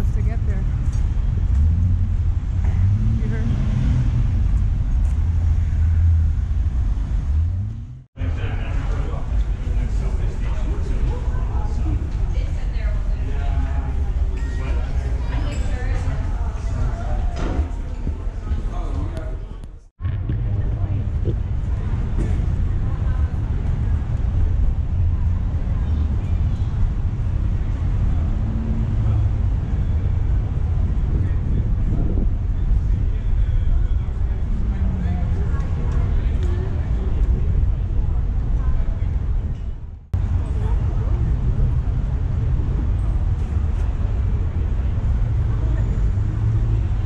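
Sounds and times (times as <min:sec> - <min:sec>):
road traffic rumble: 0:00.0 - 0:47.0
faint voices: 0:08.2 - 0:47.0.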